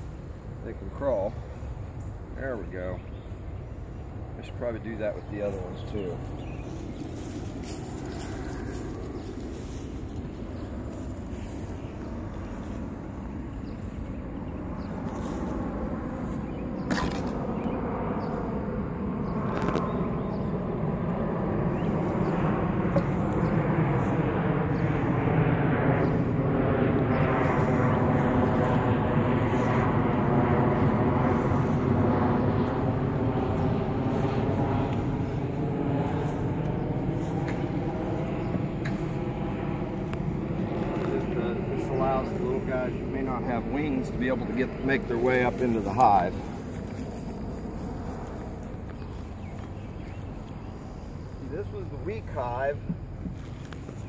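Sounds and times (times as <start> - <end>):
distant engine passing: 0.0 - 54.0.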